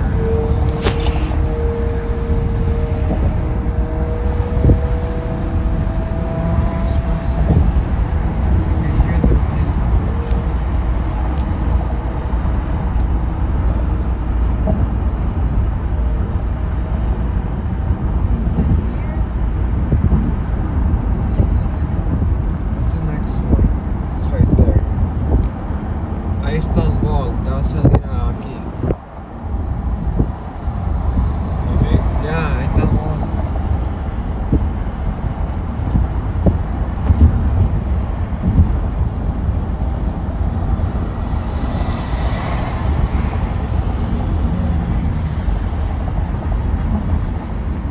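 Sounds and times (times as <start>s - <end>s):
engine rumble: 0.0s - 47.9s
road and tyre noise in car: 0.0s - 47.9s.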